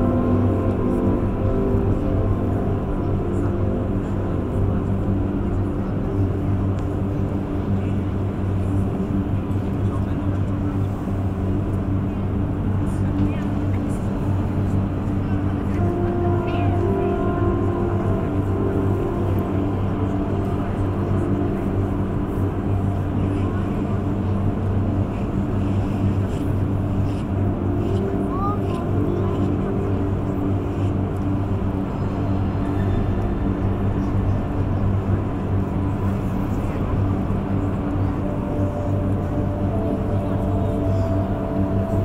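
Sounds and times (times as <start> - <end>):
ambient drone with held tones: 0.0 - 42.0
murmur of voices: 0.0 - 42.0.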